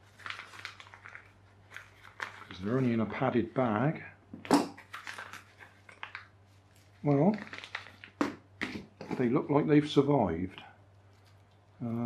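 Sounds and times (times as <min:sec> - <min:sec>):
plastic mailing bag crinkling: 0:00.0 - 0:03.4, 0:04.8 - 0:08.4.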